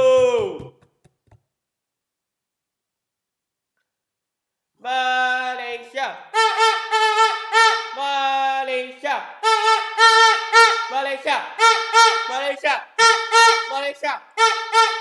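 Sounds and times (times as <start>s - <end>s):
plastic horn toots: 6.4s - 8.0s, 9.4s - 11.0s, 11.6s - 13.8s, 14.4s - 15.0s.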